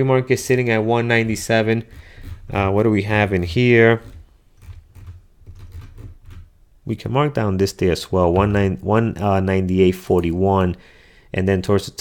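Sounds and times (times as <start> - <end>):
keyboard and mouse clicks: 4.0 - 6.6.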